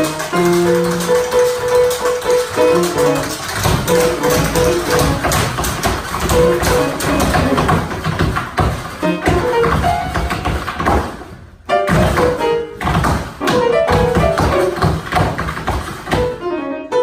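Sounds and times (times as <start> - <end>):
tap shoes on wooden board: 0.0 - 16.4
grand piano notes: 0.0 - 17.0.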